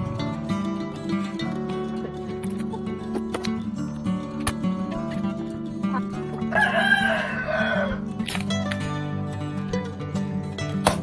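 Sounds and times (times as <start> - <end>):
acoustic guitar music: 0.0 - 11.0
rooster crowing: 6.4 - 8.0.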